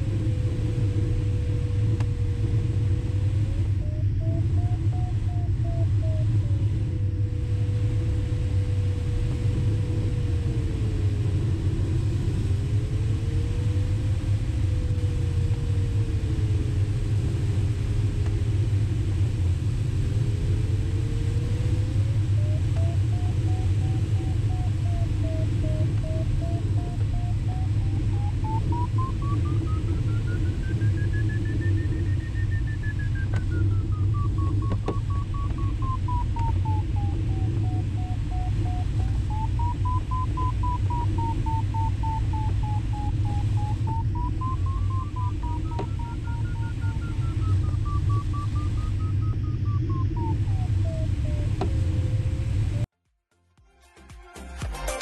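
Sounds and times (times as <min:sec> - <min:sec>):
variometer tone sliding in pitch: 0:00.0 - 0:19.2, 0:19.9 - 0:52.8
airflow rushing in cockpit: 0:00.0 - 0:52.9.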